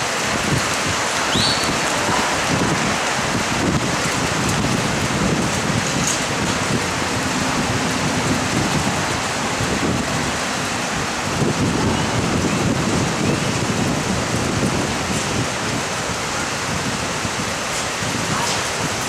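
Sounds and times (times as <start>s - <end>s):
loud rushing noise: 0.0s - 19.0s.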